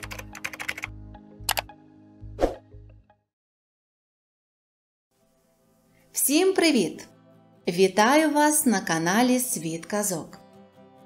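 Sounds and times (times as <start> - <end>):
keyboard typing: 0.0 - 1.7
light background music: 0.0 - 3.3, 5.1 - 11.0.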